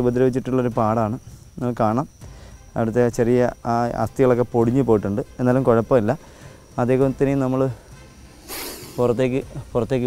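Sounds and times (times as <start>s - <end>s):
man talking: 2.8s - 6.2s, 6.8s - 7.8s, 8.9s - 10.0s
snake hissing: 6.2s - 7.1s, 7.7s - 9.7s.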